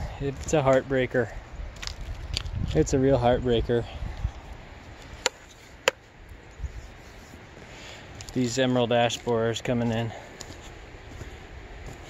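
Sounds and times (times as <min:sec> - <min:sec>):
faint outdoor background: 0:00.0 - 0:12.0.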